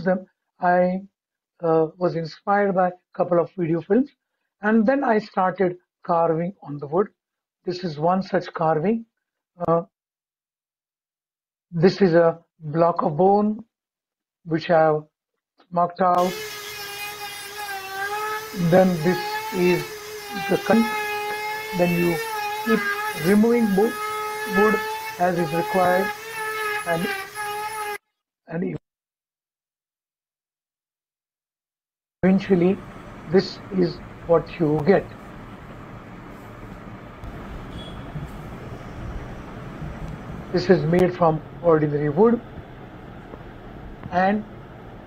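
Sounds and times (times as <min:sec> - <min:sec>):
rotary carving tool whine: 0:16.2 - 0:28.0, 0:32.4 - 0:43.8
person speaking: 0:18.5 - 0:27.3, 0:32.2 - 0:35.2, 0:39.8 - 0:42.5
microphone hum and hiss: 0:32.2 - 0:45.0.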